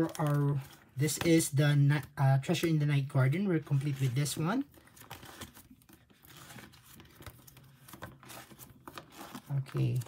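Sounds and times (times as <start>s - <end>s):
plastic sleeves crinkling: 0.0s - 10.0s.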